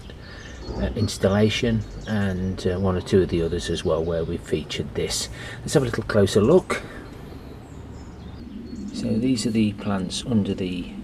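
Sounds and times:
low background hum: 0:00.0 - 0:11.0
faint high bird chirps: 0:06.4 - 0:11.0.

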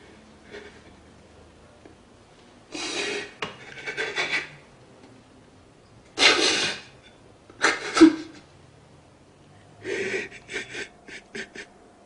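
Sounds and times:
man sobbing: 0:09.8 - 0:11.8.

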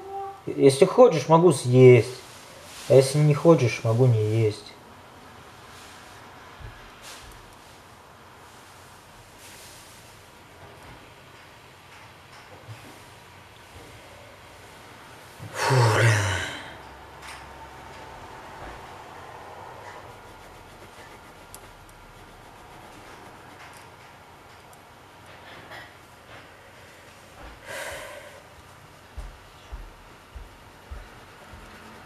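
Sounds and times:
person breathing loudly: 0:15.4 - 0:16.8, 0:27.6 - 0:28.5.

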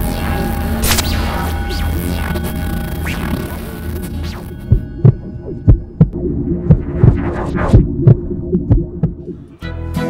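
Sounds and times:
low electronic hum: 0:00.0 - 0:09.5
deep bass thumps: 0:04.6 - 0:09.4.

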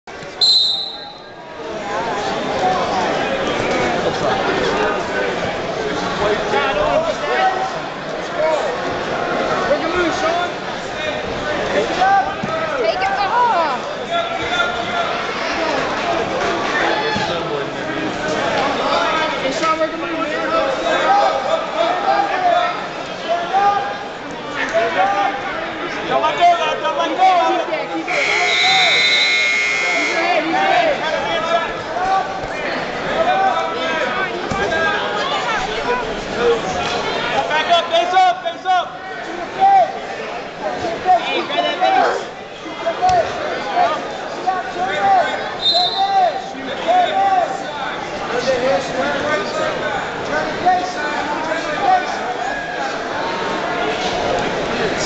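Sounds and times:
crowd voices: 0:00.0 - 0:55.0
referee's whistle blast: 0:00.4 - 0:01.4, 0:28.0 - 0:30.4, 0:45.6 - 0:46.2
electronic buzzer high tone: 0:28.1 - 0:30.3.

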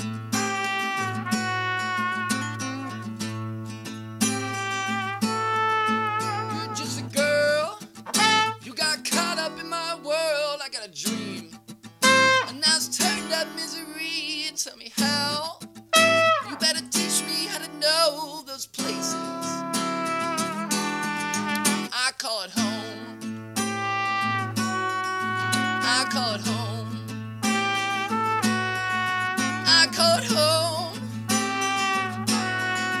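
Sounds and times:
acoustic guitar strummed: 0:00.0 - 0:22.0, 0:22.6 - 0:33.0.

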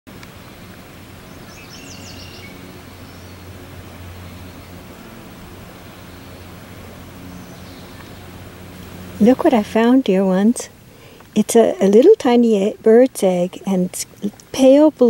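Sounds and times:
steady low hum: 0:00.1 - 0:15.0
small bird chirping: 0:01.3 - 0:03.4.

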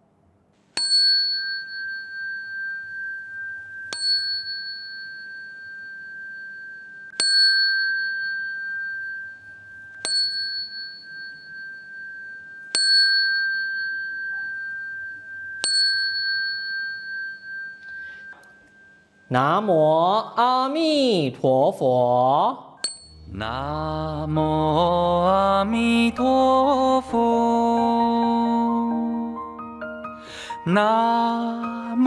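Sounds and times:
ritual bell ringing: 0:00.8 - 0:19.7, 0:22.8 - 0:32.0.

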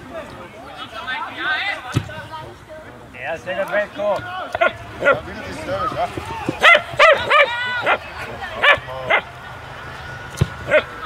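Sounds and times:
dog barking in high yaps: 0:06.6 - 0:08.0.

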